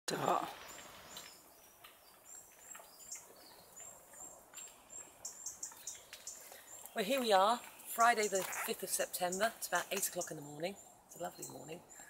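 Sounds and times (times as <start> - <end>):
high thin birdsong: 0.1 - 12.0.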